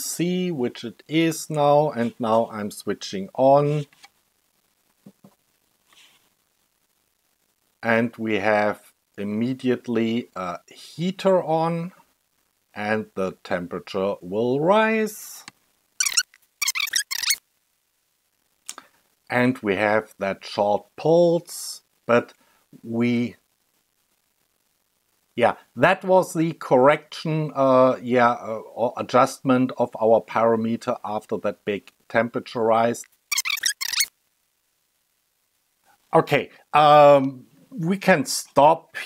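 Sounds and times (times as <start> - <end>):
man's voice: 0.0 - 3.9
sped-up squeaky voice: 16.0 - 17.4, 33.3 - 34.1.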